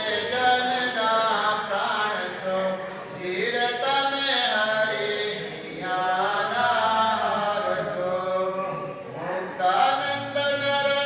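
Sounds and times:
person chanting a hymn: 0.0 - 11.0.

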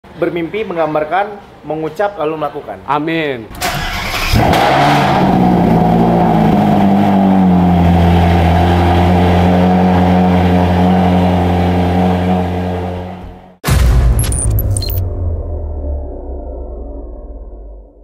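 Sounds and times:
car engine starting and revving: 3.6 - 13.3.

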